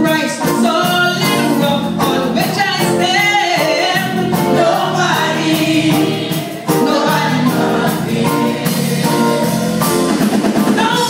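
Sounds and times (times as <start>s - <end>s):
gospel choir singing: 1.6s - 11.0s.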